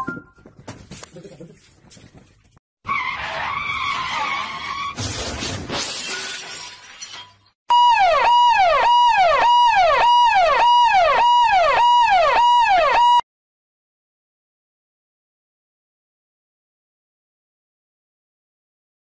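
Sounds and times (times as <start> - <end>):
electronic siren tone: 7.7 - 13.2.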